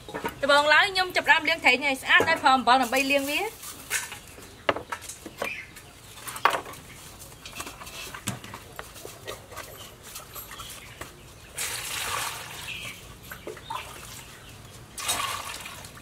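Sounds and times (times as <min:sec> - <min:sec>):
fish scrubbed in metal bowls: 0:07.2 - 0:16.0
water splashing into steel bowl: 0:15.0 - 0:16.0.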